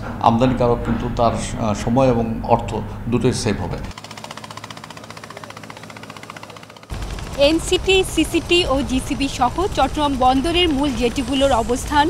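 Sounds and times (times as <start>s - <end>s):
man talking: 0.1s - 3.9s
motorboat engine knocking: 4.0s - 12.0s.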